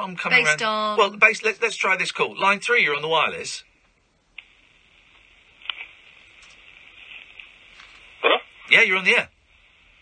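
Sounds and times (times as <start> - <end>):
thin hiss of line noise: 4.4 - 10.0.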